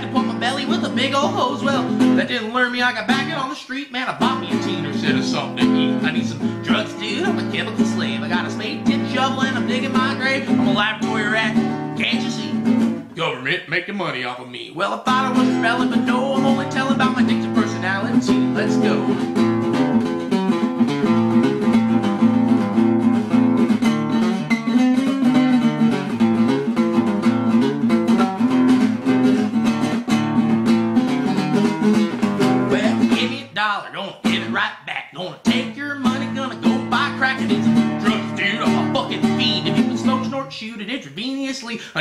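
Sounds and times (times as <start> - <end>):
acoustic guitar strumming chords: 0.0 - 13.6, 14.8 - 42.0.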